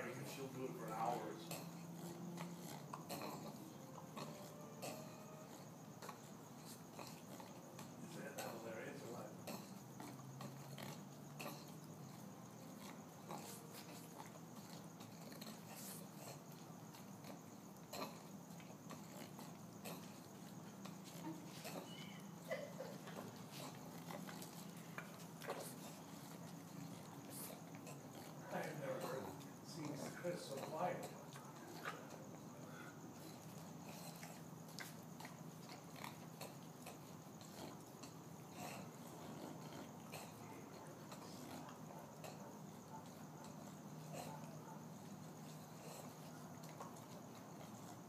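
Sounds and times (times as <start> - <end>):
dog breathing and snuffling: 0.0 - 48.0
dog grunts: 0.0 - 48.0.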